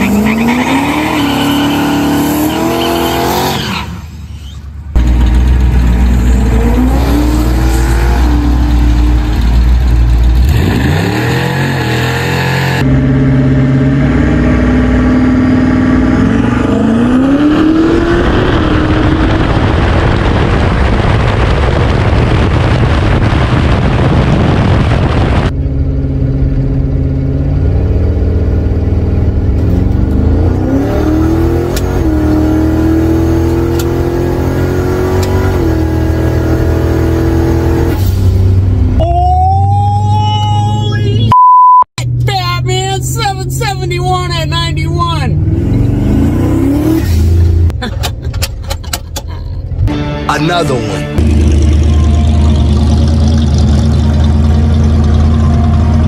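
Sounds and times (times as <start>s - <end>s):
drag car engine at full throttle: 0.0s - 39.0s, 51.2s - 56.0s
rushing wind noise: 16.9s - 25.6s.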